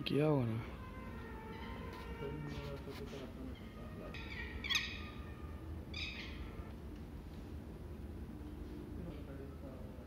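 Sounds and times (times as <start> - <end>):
bird chirping: 3.4 - 6.7.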